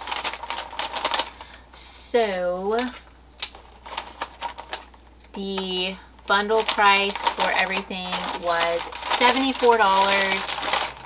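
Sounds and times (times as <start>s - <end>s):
packing paper crackling: 0.0s - 1.7s, 2.7s - 11.0s.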